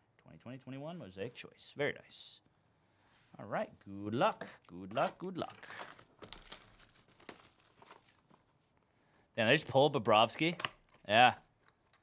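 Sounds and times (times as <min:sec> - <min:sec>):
plastic shrink wrap crinkling: 0:04.2 - 0:08.7.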